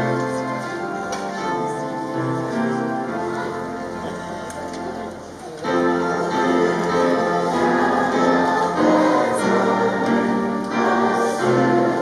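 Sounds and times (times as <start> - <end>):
keyboard chord: 0.0 - 12.0.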